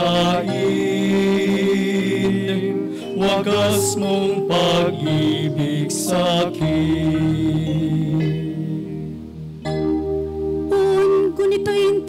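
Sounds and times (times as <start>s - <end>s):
sustained instrumental chords: 0.0s - 12.0s
woman singing a chant: 10.7s - 12.0s.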